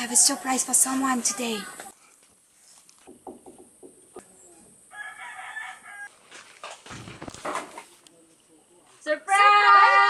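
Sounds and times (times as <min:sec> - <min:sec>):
knock on wooden door: 0:03.1 - 0:04.0
rooster crowing: 0:04.9 - 0:06.1
scuffling: 0:06.1 - 0:09.2.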